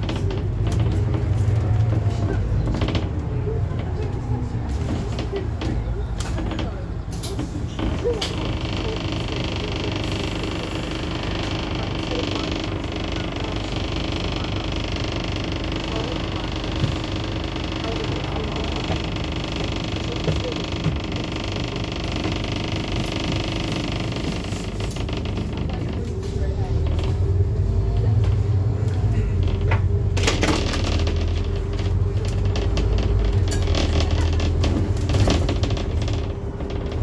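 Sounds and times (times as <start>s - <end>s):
road noise: 0.0s - 8.3s, 23.7s - 37.0s
bus diesel engine drone: 0.0s - 37.0s.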